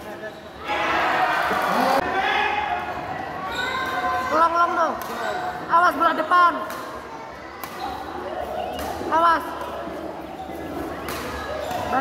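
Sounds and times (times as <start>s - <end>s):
spectators shouting: 0.6s - 4.0s
rackets hitting shuttlecock: 6.6s - 7.0s, 7.6s - 9.7s, 10.9s - 11.9s.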